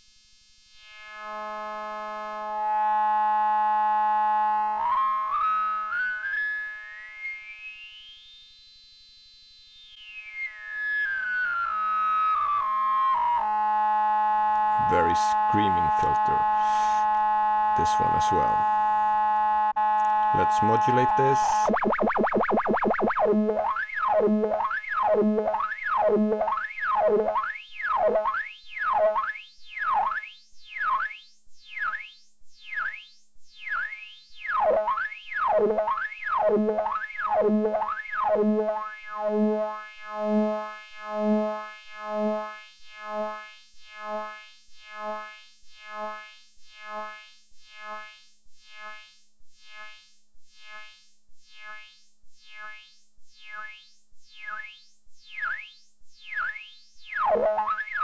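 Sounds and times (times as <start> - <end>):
synthesizer tone with filter sweeps: 14.6 - 28.4, 34.6 - 39.6, 57.2 - 58.0.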